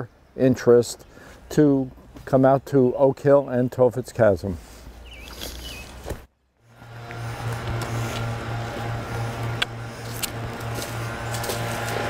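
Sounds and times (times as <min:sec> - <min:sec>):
distant leaf blowers droning: 0:06.6 - 0:12.0.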